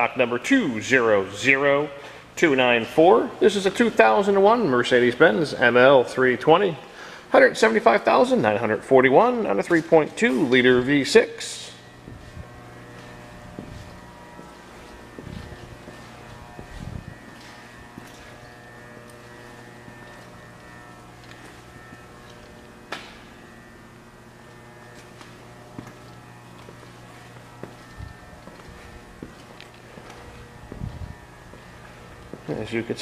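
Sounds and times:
steady machine hum: 0.0 - 33.0.

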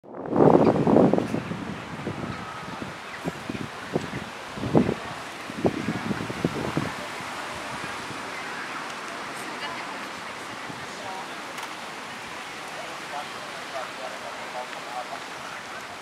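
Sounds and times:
wind buffeting microphone: 0.0 - 16.0
steady outdoor hiss: 0.1 - 16.0.

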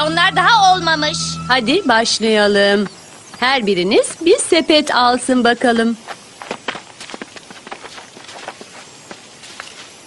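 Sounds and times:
faint outdoor background: 0.0 - 10.0.

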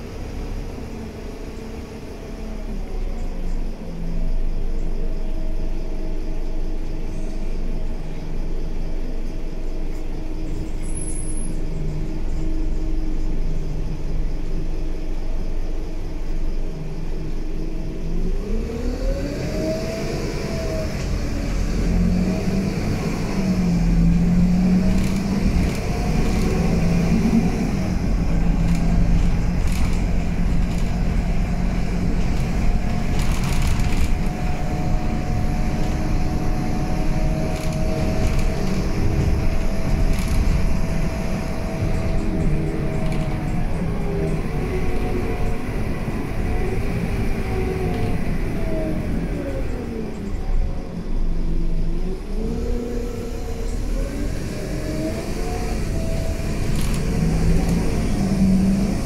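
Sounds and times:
bus diesel engine: 0.0 - 59.0.

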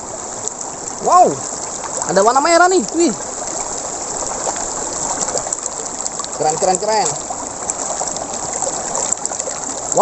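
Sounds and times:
river water rushing over stones: 0.0 - 10.0.

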